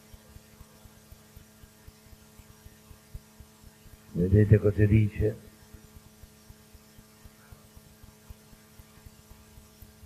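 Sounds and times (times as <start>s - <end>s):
electrical mains hum: 0.0s - 10.0s
recording hiss: 3.8s - 5.9s.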